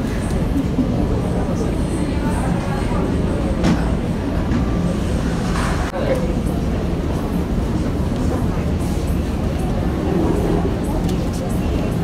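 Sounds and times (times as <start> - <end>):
low rumble of indoor hall: 0.0 - 12.0
murmured voices: 0.0 - 12.0.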